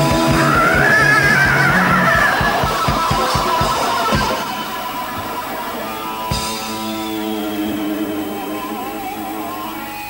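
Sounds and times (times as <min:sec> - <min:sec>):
fast drumming: 0:00.0 - 0:09.2
electric guitar: 0:00.0 - 0:10.0.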